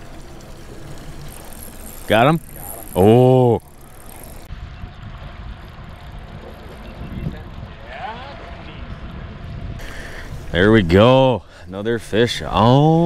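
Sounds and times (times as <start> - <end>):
wind buffeting microphone: 0.0 - 11.1.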